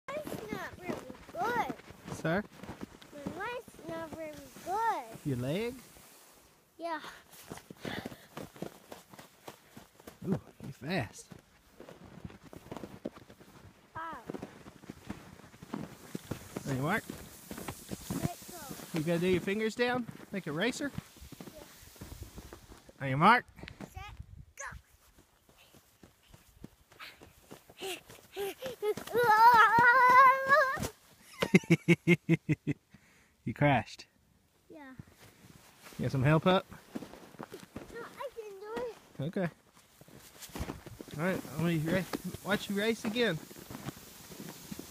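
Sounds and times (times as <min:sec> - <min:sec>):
child yelling: 0:00.1 - 0:01.7, 0:14.0 - 0:14.3, 0:24.6 - 0:24.8, 0:28.4 - 0:30.9
boots crunching through snow: 0:00.1 - 0:06.2, 0:07.2 - 0:22.9, 0:35.2 - 0:39.2, 0:39.8 - 0:44.9.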